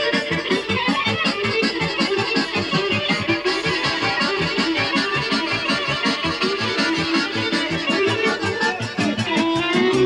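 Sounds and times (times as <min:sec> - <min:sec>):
amplified band with bass line: 0:00.0 - 0:10.0.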